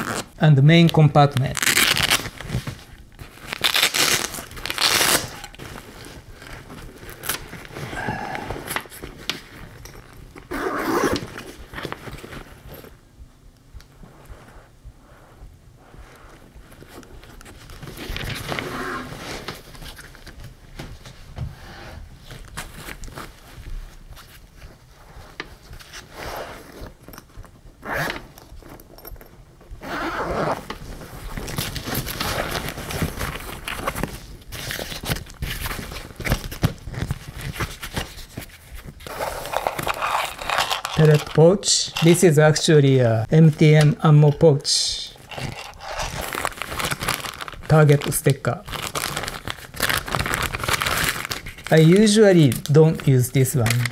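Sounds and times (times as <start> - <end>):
plastic bag crinkling: 1.4 - 10.2, 38.8 - 42.7, 43.6 - 53.9
fabric rustling and scraping: 1.6 - 13.2, 13.9 - 44.4, 45.0 - 53.9.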